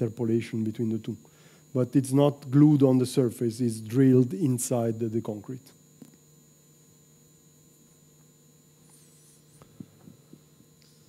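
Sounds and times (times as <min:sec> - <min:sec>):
steady electrical hum: 0:00.0 - 0:11.0
faint high whistle: 0:08.8 - 0:09.7.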